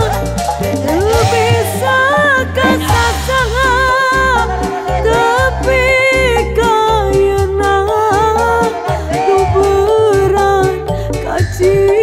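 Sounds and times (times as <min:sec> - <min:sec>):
steady bass: 0:01.0 - 0:08.6
even drum beat: 0:02.4 - 0:04.9.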